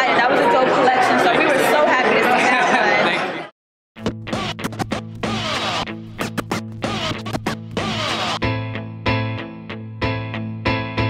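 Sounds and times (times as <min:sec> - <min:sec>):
turntable scratching: 0:04.0 - 0:08.4
steady bass line: 0:04.0 - 0:11.0.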